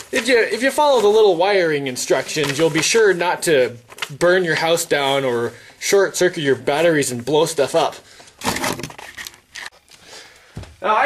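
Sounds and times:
camera handling rustling: 8.4 - 10.0.

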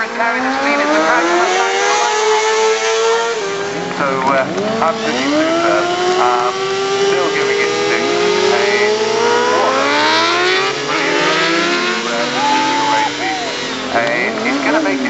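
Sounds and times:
motorcycle engines at high revs: 0.0 - 15.0
tyres spinning in burnouts: 0.0 - 15.0.

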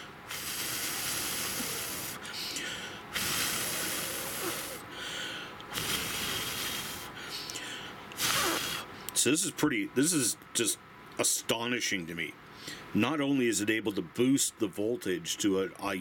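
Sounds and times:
person blowing out breaths: 0.0 - 9.0.

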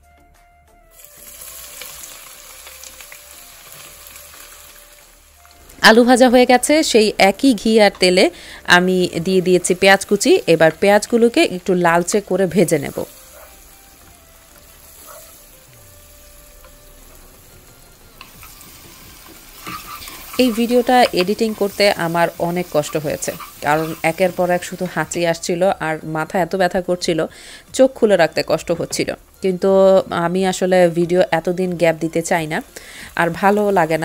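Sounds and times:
onions sizzling in hot oil: 0.9 - 34.0
wooden spatula scraping pot: 18.2 - 25.0.

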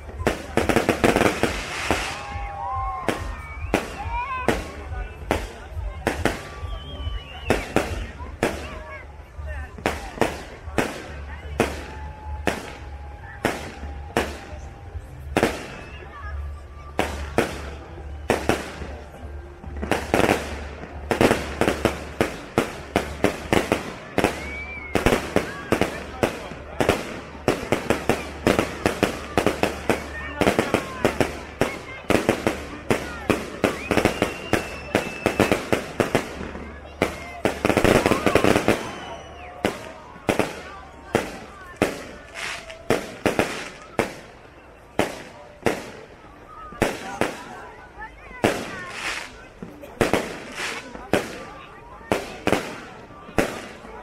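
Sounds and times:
fireworks bursting: 0.0 - 54.0.

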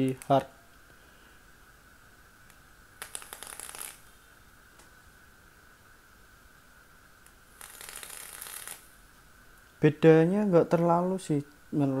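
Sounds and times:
vape coil crackling: 2.5 - 4.2, 7.2 - 9.0.

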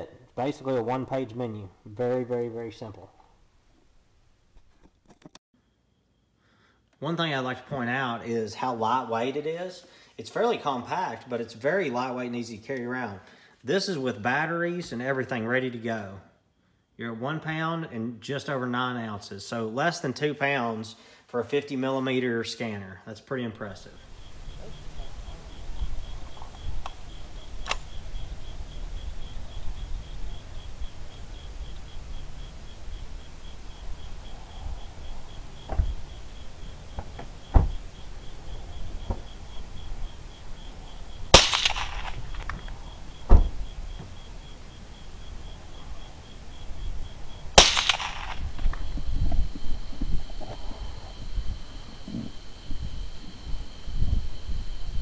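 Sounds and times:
low wind rumble: 23.8 - 55.0
suppressed rifle shots: 41.3 - 42.6, 47.6 - 48.9.

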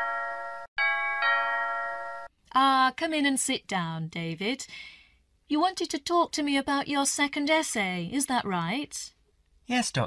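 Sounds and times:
two-tone doorbell chime: 0.0 - 2.3.

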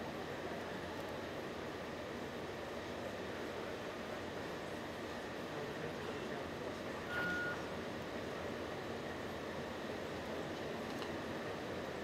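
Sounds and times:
factory hall hum: 0.0 - 12.0
short electronic beep: 7.1 - 7.7.

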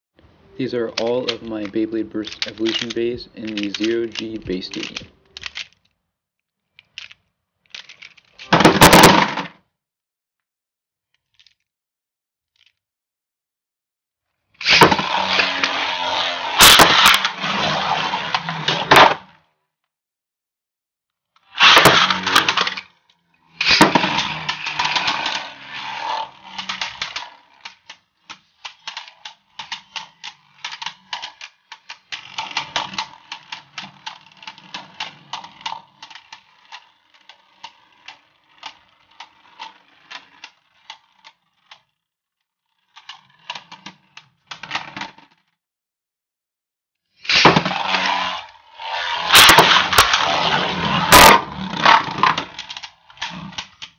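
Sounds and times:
spinning tops scraping and rattling: 0.5 - 6.0, 6.7 - 9.6, 14.6 - 19.2, 21.4 - 45.4, 47.2 - 53.9.

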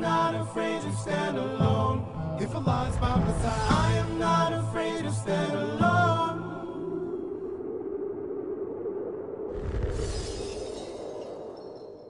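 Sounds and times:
noise burst with deep boom: 2.8 - 4.0.

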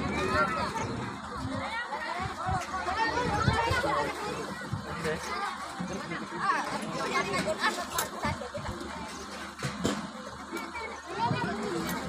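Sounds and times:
women and children chattering: 0.0 - 12.0.

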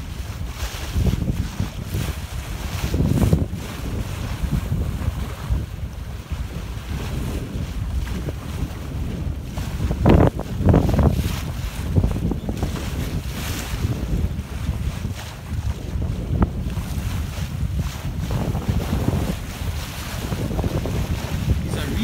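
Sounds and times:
water washing along hull: 0.0 - 22.0
wind buffeting microphone: 0.0 - 22.0.

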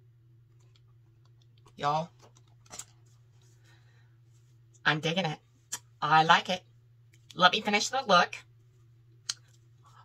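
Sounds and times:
faint low hum: 0.0 - 10.0
woman speaking: 1.7 - 2.2, 4.8 - 5.4, 6.0 - 6.7, 7.3 - 8.5.

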